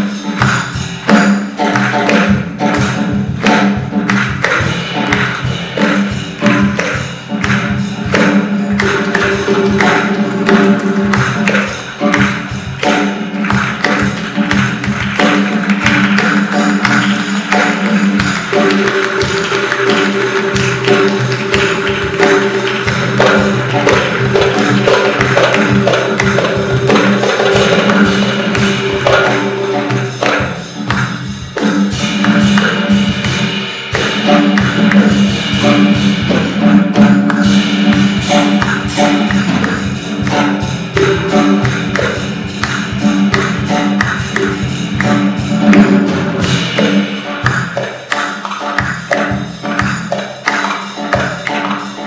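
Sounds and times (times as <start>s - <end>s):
darbuka fast strokes: 0.1s - 52.0s.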